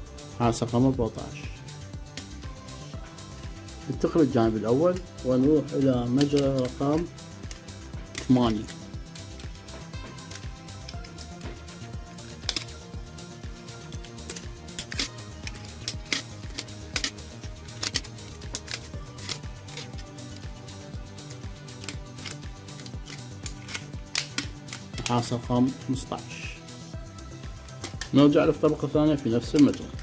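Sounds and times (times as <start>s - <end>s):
background music: 0.0s - 30.0s
wire clicking and rustling: 2.0s - 2.6s, 3.4s - 25.6s, 27.2s - 30.0s.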